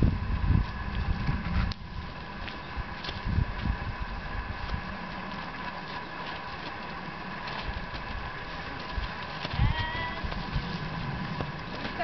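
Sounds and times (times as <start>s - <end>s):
steady outdoor hiss: 0.0s - 12.0s.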